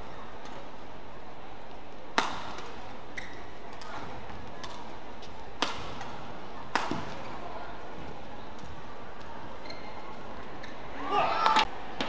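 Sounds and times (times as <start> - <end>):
arena crowd murmur: 0.0 - 12.0
racket hitting shuttlecock: 2.1 - 4.9, 5.6 - 7.2.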